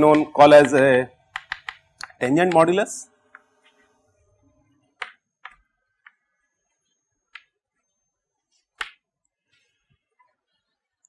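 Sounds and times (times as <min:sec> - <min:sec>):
chalk clicking on chalkboard: 0:00.0 - 0:02.7.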